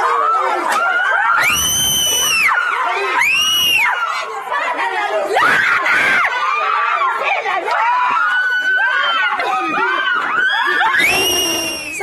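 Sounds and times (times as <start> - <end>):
women screaming: 0.0 - 4.6, 5.3 - 12.0
overlapping shouting voices: 0.0 - 12.0.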